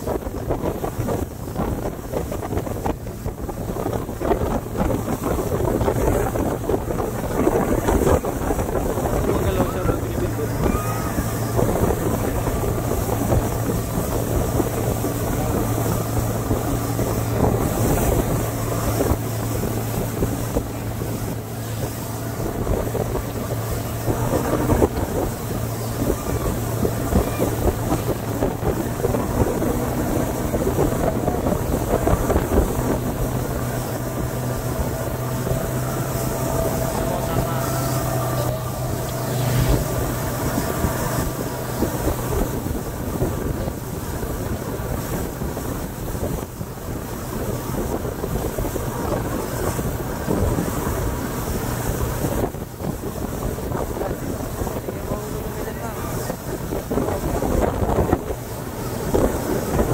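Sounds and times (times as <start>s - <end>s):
boat wake rushing: 0.0s - 59.9s
outboard motor running: 0.0s - 59.9s
wind buffeting microphone: 0.0s - 59.9s.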